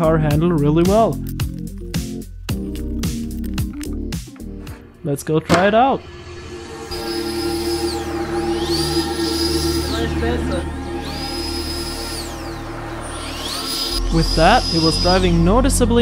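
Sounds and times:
background music: 0:00.0 - 0:16.0
electric fan whining: 0:06.0 - 0:16.0.

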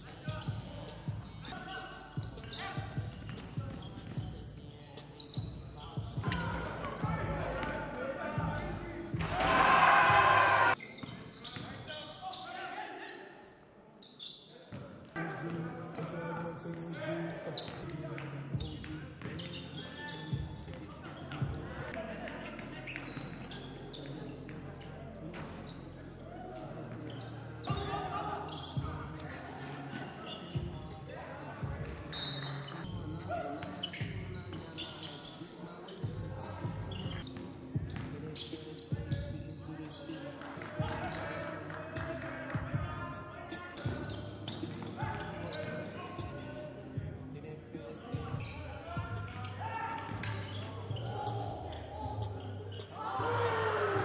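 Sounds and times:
indistinct voices: 0:00.0 - 0:10.8, 0:15.2 - 0:54.0.

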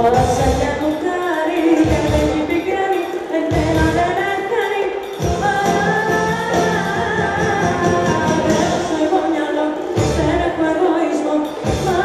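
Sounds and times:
band playing pop song: 0:00.0 - 0:12.0
woman singing: 0:00.0 - 0:12.0.

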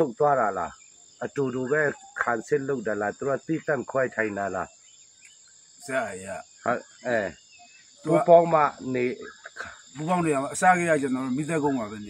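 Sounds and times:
man talking: 0:00.0 - 0:04.7, 0:05.9 - 0:07.3, 0:08.1 - 0:12.0
high-pitched insect chorus: 0:00.0 - 0:12.0.

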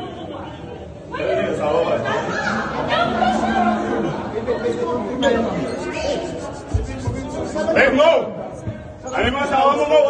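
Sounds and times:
people talking over each other: 0:00.0 - 0:10.0.

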